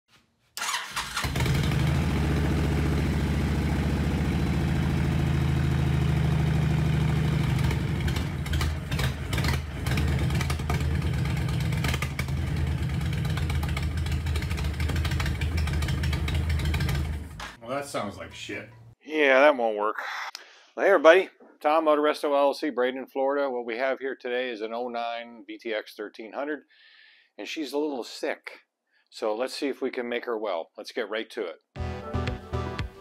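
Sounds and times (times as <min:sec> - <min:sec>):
motorcycle engine running unevenly: 0:01.3 - 0:17.6.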